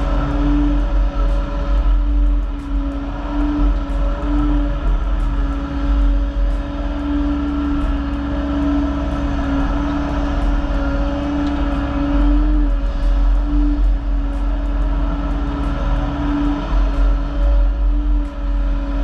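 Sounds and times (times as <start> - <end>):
excavator engine and hydraulics: 0.0 - 19.0.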